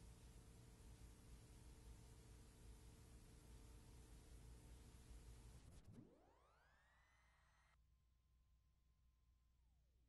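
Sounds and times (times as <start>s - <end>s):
faint rising tone: 5.7s - 7.8s.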